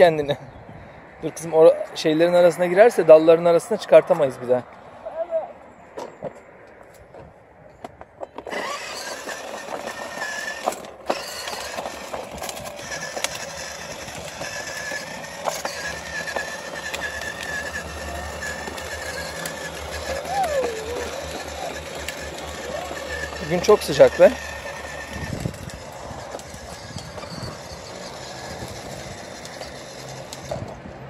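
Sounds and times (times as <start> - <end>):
electric toy scooter motor whirring: 8.4 - 31.0.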